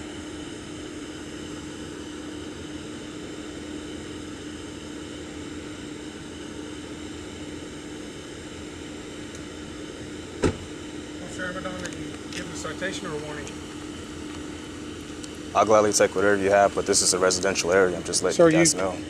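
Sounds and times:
low mechanical hum: 0.0s - 19.0s.

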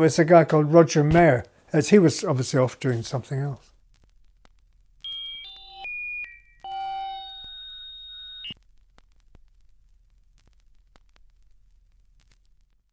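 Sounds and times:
electronic chime musical sting: 5.1s - 8.6s.

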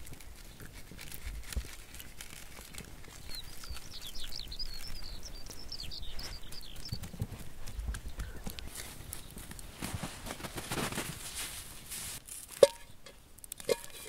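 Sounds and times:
high twittering chirps: 3.2s - 7.0s.

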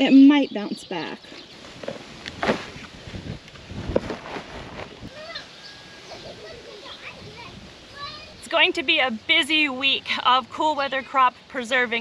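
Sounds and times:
kale leaves rustling and crunching: 1.5s - 5.4s.

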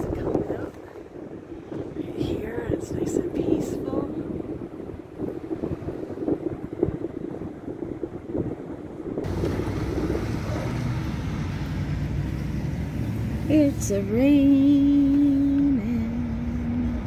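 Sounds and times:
wind gusting over microphone: 0.0s - 17.0s
car driving in rain: 4.2s - 17.0s.

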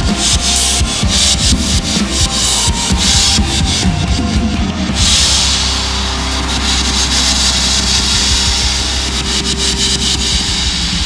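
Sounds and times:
backing track: 0.0s - 11.0s
cymbal crash: 0.0s - 11.0s
drum hits: 0.0s - 11.0s.

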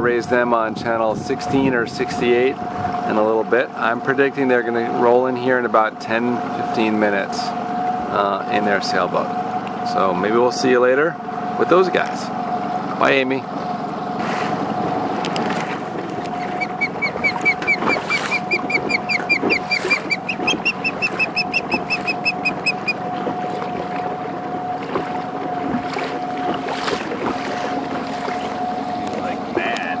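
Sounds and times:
outboard motor running: 0.0s - 30.0s
osprey whistled chirps: 16.4s - 23.0s.

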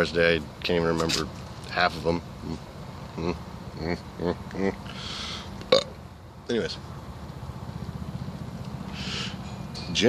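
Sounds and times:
breathy hiss of smoking: 4.9s - 5.5s, 8.9s - 9.4s.

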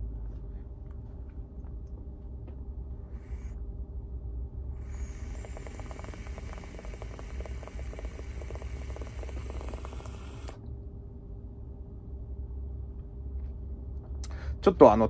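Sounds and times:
e-liquid crackling on hot coil: 4.8s - 10.6s
electronic cigarette hissing: 4.8s - 10.6s.

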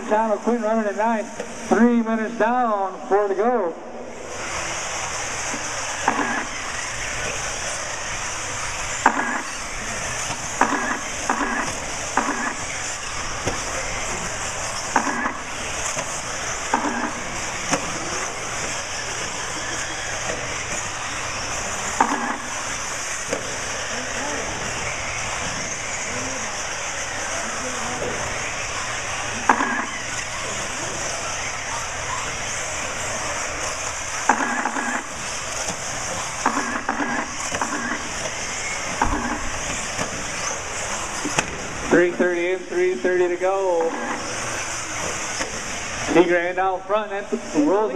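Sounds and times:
high-pitched engine buzz: 4.1s - 47.9s.

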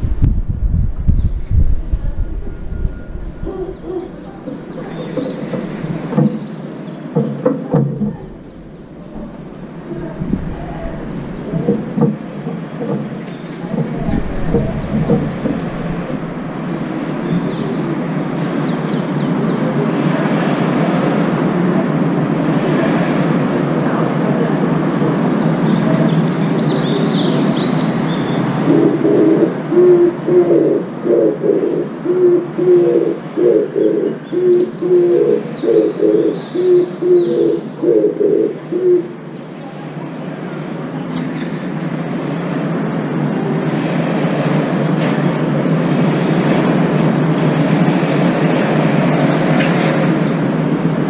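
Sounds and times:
dove cooing: 2.1s - 39.9s.

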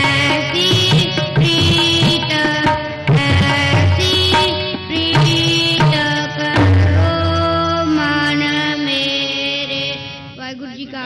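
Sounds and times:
harmonium chord: 0.0s - 10.4s.

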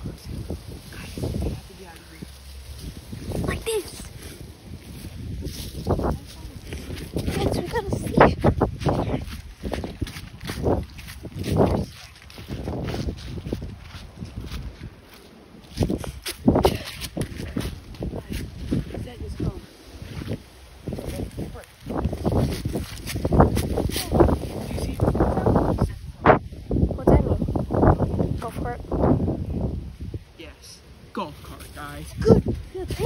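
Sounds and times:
footsteps through dry leaves: 0.0s - 25.8s
wind buffeting microphone: 0.0s - 30.6s, 31.5s - 33.0s
indistinct voices: 3.2s - 4.4s.

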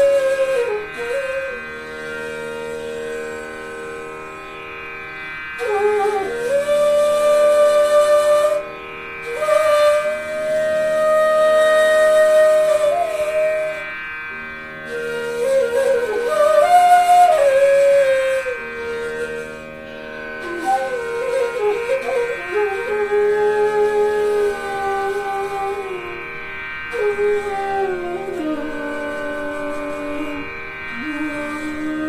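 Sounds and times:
bamboo flute long note: 0.0s - 4.6s, 5.5s - 32.0s.

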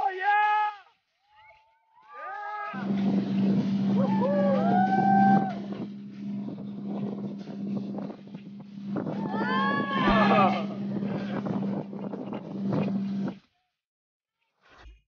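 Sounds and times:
person whooping: 2.0s - 2.8s, 4.0s - 5.6s, 9.2s - 11.3s
motorboat engine running: 2.8s - 13.4s.

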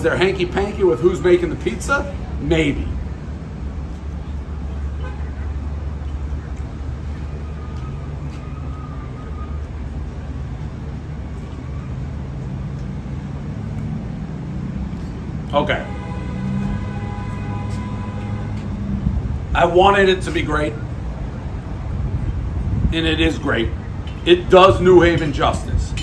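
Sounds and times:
road traffic passing: 0.0s - 26.0s.

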